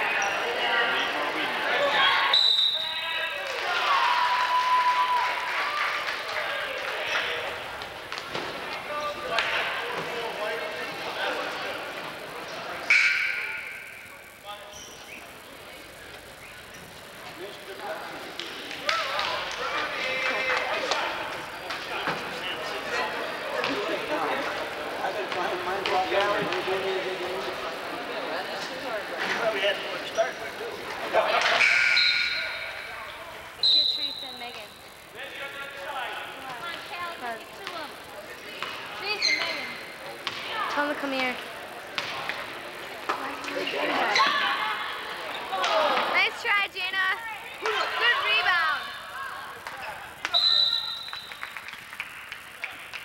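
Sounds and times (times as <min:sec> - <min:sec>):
referee whistle blasts: 0:02.2 - 0:03.1, 0:31.8 - 0:32.6, 0:33.6 - 0:34.4, 0:50.3 - 0:51.4
people calling out: 0:43.3 - 0:51.2.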